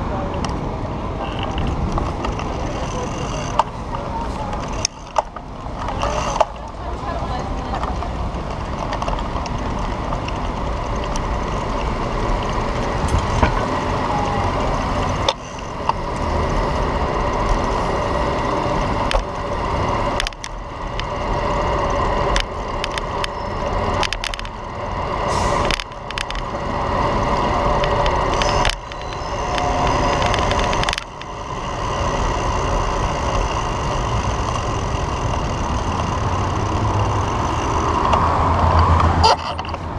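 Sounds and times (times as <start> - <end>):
electric scooter wheels rumbling: 0.0 - 39.9
street traffic: 0.0 - 39.9.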